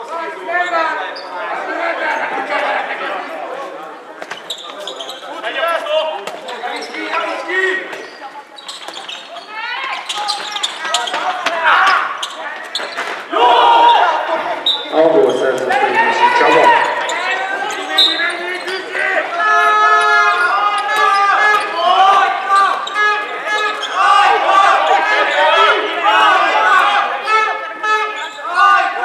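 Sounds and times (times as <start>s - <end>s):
players shouting with echo: 13.2s - 29.0s.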